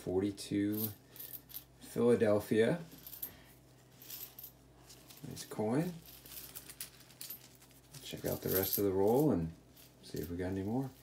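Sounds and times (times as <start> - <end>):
coins clinking: 2.9 - 5.4, 6.0 - 11.0.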